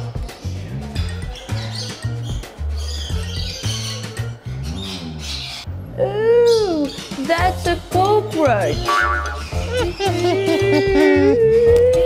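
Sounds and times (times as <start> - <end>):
children's music with bass line: 0.0 - 5.7, 6.3 - 12.0.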